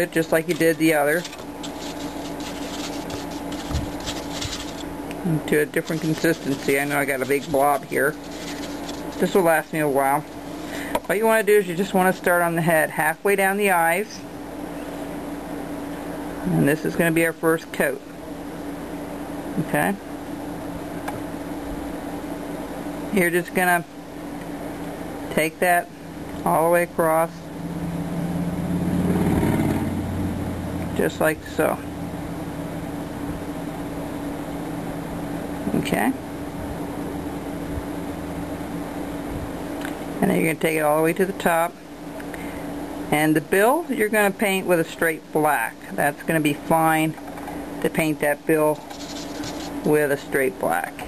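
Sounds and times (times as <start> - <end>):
paintbrush strokes on foam plate: 0.0 - 10.9, 48.7 - 50.0
steady low hum: 0.0 - 51.0
soft bump: 1.6 - 4.9.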